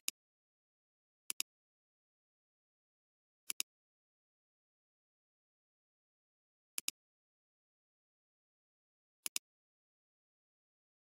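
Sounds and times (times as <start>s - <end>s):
computer mouse clicks: 9.2s - 9.5s.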